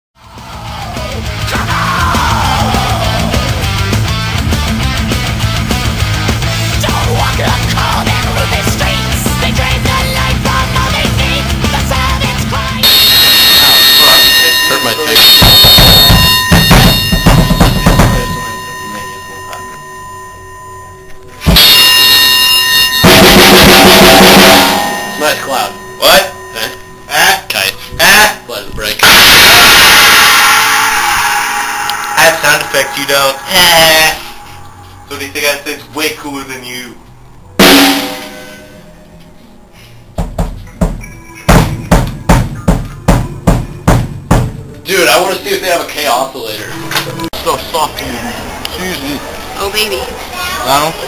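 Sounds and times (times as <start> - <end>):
drum kit beat: 0.3 - 19.1, 21.4 - 26.7, 29.0 - 30.0, 37.6 - 38.9, 40.1 - 44.8
cymbal ringing: 12.8 - 27.8, 29.0 - 35.7, 37.6 - 39.2
cymbal struck hard: 21.5 - 26.7, 37.6 - 39.0.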